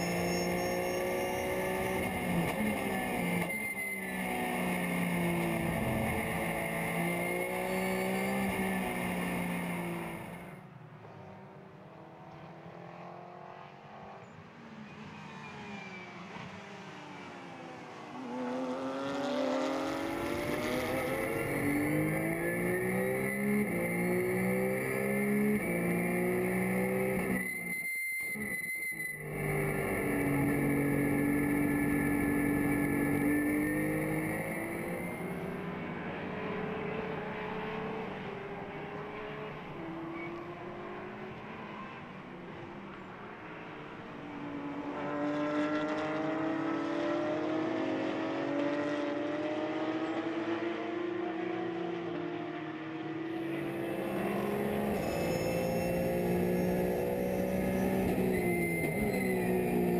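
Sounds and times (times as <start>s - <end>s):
race car engine with gear changes: 0.0s - 59.9s.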